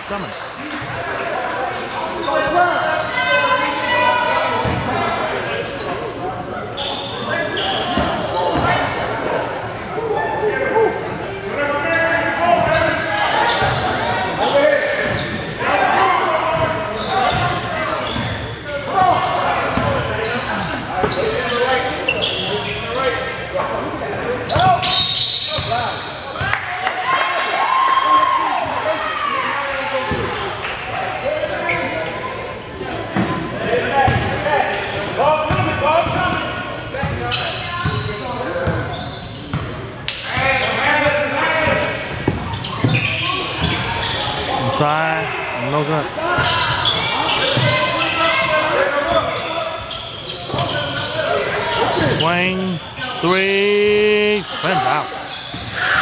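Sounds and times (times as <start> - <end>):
voices and calls echoing: 0.0 - 56.0.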